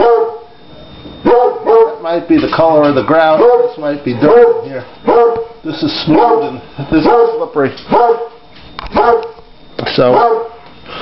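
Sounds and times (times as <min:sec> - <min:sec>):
dog barking indoors: 0:00.0 - 0:00.5, 0:01.2 - 0:02.1, 0:03.3 - 0:09.4, 0:10.0 - 0:10.6.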